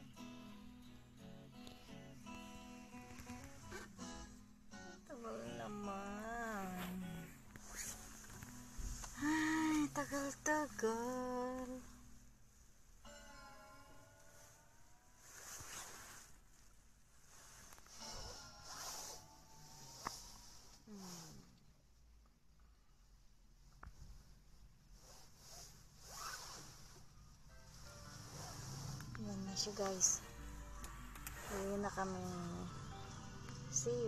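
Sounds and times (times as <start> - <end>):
seatbelt pulled from retractor: 3.1 - 4.0, 7.6 - 9.2, 15.3 - 16.3, 17.4 - 21.5, 25.0 - 27.0, 28.2 - 30.2, 30.8 - 31.8
woman humming: 5.1 - 7.4, 9.1 - 11.8
rustling swish on jacket: 6.5 - 9.2, 15.2 - 21.2, 24.9 - 27.1, 27.7 - 32.5.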